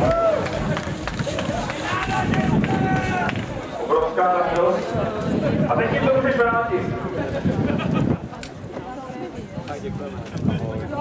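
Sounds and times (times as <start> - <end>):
outdoor crowd noise: 0.0 - 11.0
voices shouting and calling out: 0.0 - 11.0.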